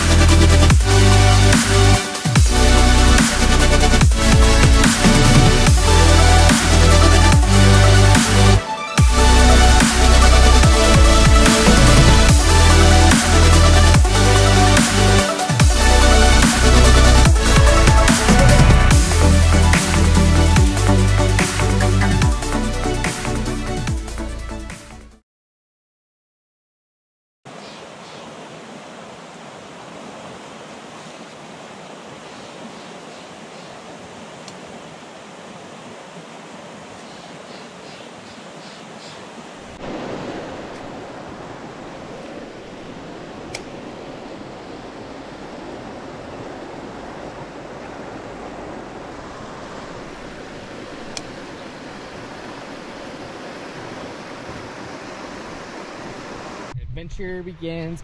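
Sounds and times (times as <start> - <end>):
creek water rushing: 0.0 - 24.3, 27.5 - 56.8.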